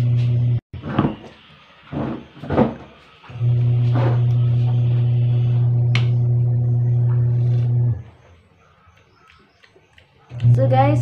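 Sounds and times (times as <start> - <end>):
loud steady low hum: 0.0 - 0.6, 3.3 - 8.1.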